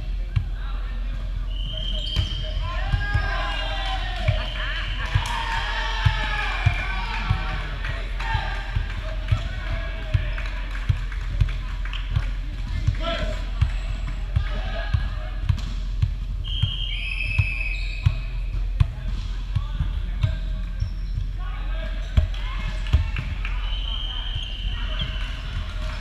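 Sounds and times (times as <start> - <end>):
sneaker squeaks: 1.4 - 2.6, 16.4 - 18.8, 20.0 - 21.4, 22.6 - 26.0.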